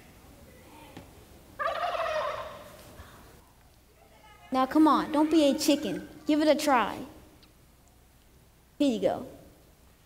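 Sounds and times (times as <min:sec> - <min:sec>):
turkey call gobble: 0:01.6 - 0:02.8.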